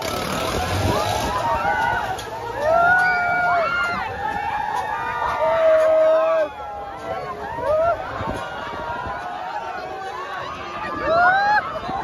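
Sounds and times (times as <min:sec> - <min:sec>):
fairground ride rumbling: 0:00.0 - 0:12.0.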